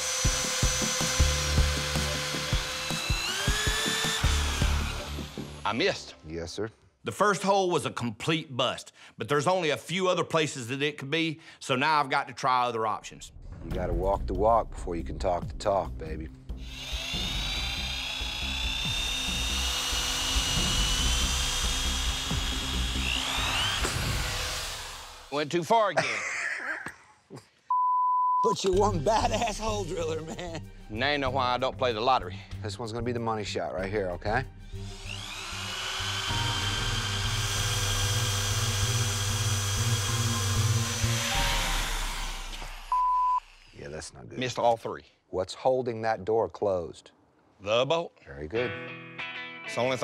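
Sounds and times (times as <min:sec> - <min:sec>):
electric drill whining: 0:00.0 - 0:05.8, 0:16.6 - 0:25.4, 0:34.7 - 0:43.8
music: 0:00.0 - 0:06.8, 0:13.2 - 0:24.3, 0:28.4 - 0:42.7, 0:48.4 - 0:50.0
short flat beep: 0:27.7 - 0:28.5, 0:42.9 - 0:43.4.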